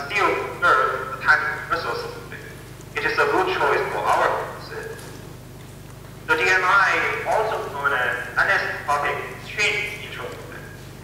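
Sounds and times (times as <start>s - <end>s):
lecturer's voice over loudspeakers: 0.0s - 11.0s
steady low hum: 0.0s - 11.0s.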